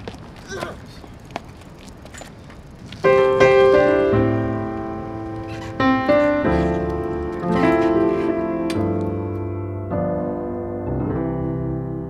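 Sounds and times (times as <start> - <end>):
faint background noise: 0.0 - 12.0
sustained piano chords: 2.8 - 12.0.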